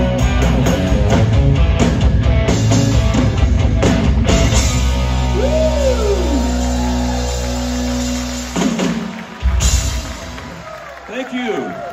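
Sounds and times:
rock band sustained chord: 0:00.0 - 0:10.4.

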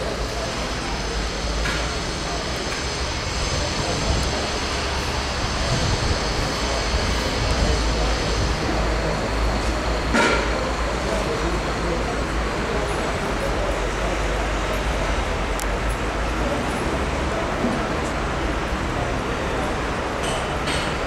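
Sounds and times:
indistinct crowd voices: 0:00.0 - 0:21.0
traffic rumble: 0:00.0 - 0:21.0.

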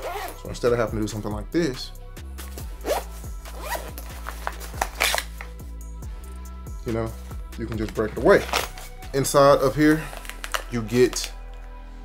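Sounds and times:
zipper being pulled open: 0:00.0 - 0:00.4, 0:02.8 - 0:05.5, 0:08.4 - 0:08.9
background music with bass: 0:00.0 - 0:12.0.

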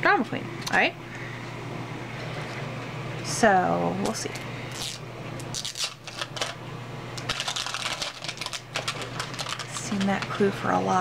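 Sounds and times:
plastic wrapping crinkling: 0:04.7 - 0:06.6, 0:07.2 - 0:10.5.

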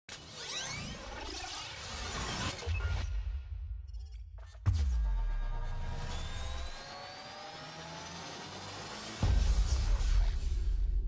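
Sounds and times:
synthesised rising tones: 0:05.1 - 0:10.1.

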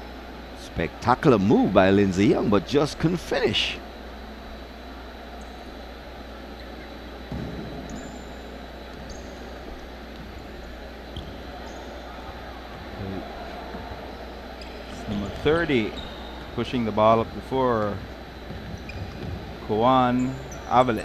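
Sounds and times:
faint crowd and player voices: 0:00.0 - 0:21.0
steady hall noise: 0:00.0 - 0:21.0
sneakers squeaking on hardwood: 0:06.5 - 0:16.6, 0:17.8 - 0:21.0.

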